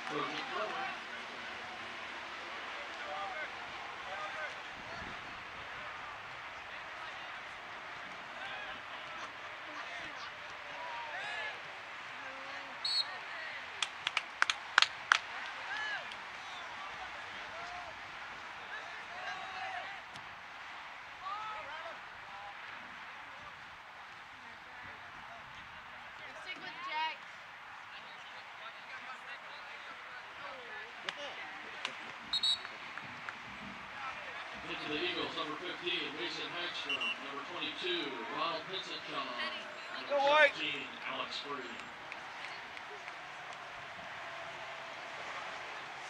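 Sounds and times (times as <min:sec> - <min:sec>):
hand claps: 0:13.8 - 0:16.3, 0:31.0 - 0:33.8, 0:41.6 - 0:44.2
distant shouts and calls: 0:30.0 - 0:46.0.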